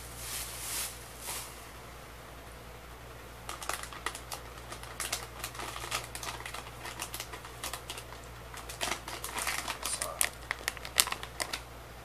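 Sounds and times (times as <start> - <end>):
plastic snack bag crinkling: 3.5 - 11.7.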